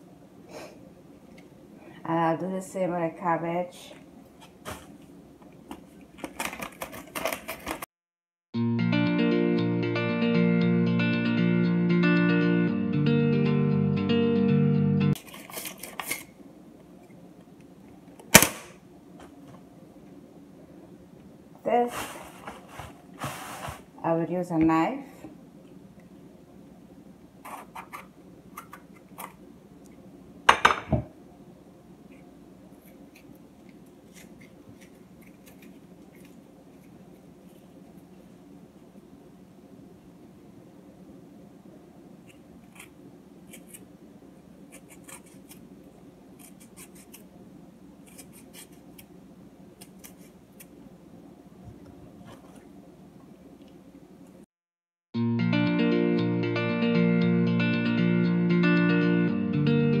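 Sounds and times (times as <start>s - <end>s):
faint room hum: 0.0s - 7.9s, 15.1s - 54.5s.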